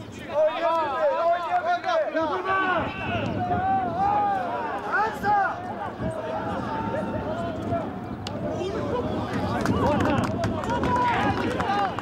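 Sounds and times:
men shouting and calling: 0:00.2 - 0:12.0.

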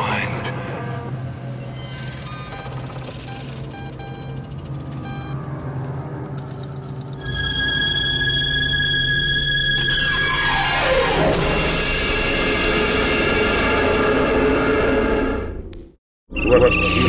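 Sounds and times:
low hum: 0:00.0 - 0:15.9
electronic drone with high tones: 0:00.4 - 0:12.8
short electronic beeps: 0:02.0 - 0:05.4.

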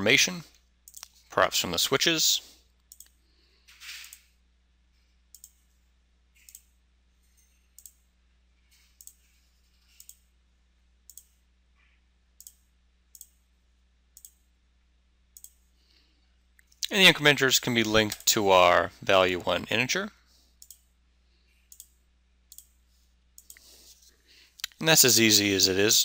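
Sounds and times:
faint low hum: 0:00.0 - 0:26.0
computer mouse clicks: 0:02.8 - 0:03.2, 0:03.9 - 0:04.3, 0:05.3 - 0:05.6, 0:06.4 - 0:06.7, 0:07.7 - 0:08.0, 0:08.8 - 0:09.3, 0:09.9 - 0:10.2, 0:11.1 - 0:11.4, 0:12.4 - 0:13.4, 0:14.2 - 0:14.4, 0:15.4 - 0:15.6, 0:20.6 - 0:20.8, 0:21.7 - 0:22.8, 0:23.4 - 0:23.7.

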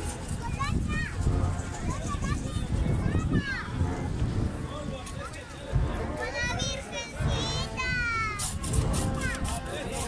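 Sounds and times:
band playing funeral march: 0:00.0 - 0:10.0
crowd chatter: 0:00.0 - 0:10.0
low drum beats: 0:00.0 - 0:10.0.

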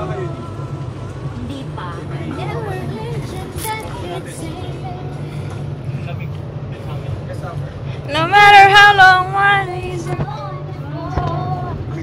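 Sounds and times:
bus engine drone: 0:00.0 - 0:12.0.

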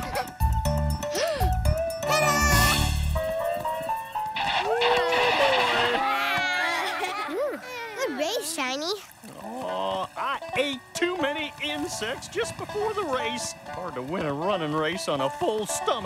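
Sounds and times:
background music: 0:00.0 - 0:08.6, 0:09.4 - 0:16.0
cartoon voices cheering: 0:02.1 - 0:02.9, 0:04.5 - 0:07.6.

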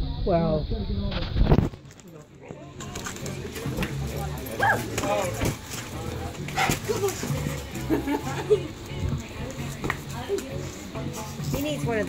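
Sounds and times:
dog barking: 0:04.6 - 0:04.9.

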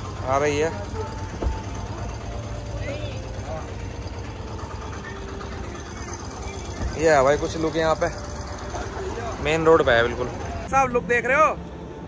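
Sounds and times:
traffic rumble: 0:00.0 - 0:12.0.

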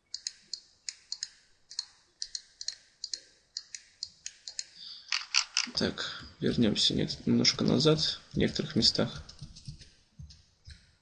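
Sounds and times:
computer mouse clicking: 0:00.1 - 0:05.8.

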